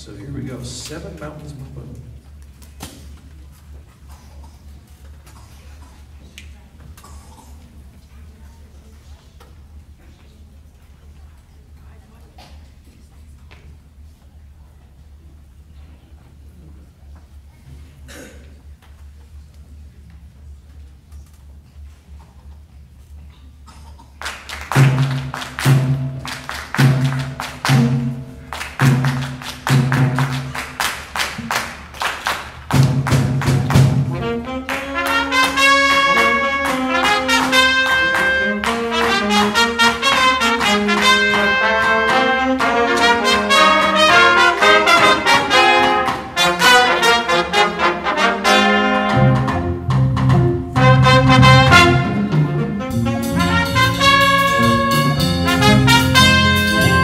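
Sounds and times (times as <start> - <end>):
drums and bass accented hits: 24.8 - 30.6, 32.7 - 34.2, 49.2 - 57.0
trumpets and trombone melody: 33.7 - 57.0.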